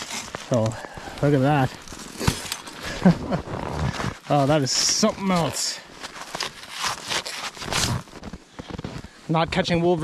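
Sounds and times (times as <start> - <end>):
man chuckling: 2.8 - 3.9.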